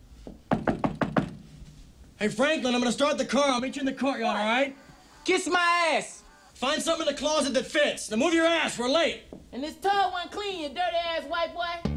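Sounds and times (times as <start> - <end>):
knocking on a door: 0.3 - 1.5.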